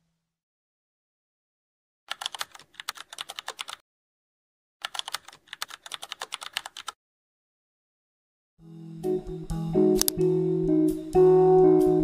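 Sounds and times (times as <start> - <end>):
computer keyboard typing: 2.1 - 3.8, 4.8 - 7.0.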